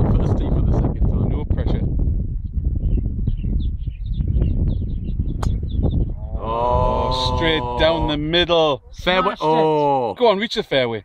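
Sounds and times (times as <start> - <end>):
wind rumbling on microphone: 0.0 - 9.4
man saying ooh: 6.2 - 8.3, 9.2 - 10.2.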